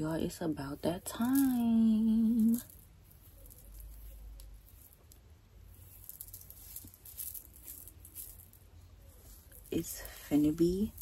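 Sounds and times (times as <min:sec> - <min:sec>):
hair crackling and rustling: 0:00.0 - 0:11.0.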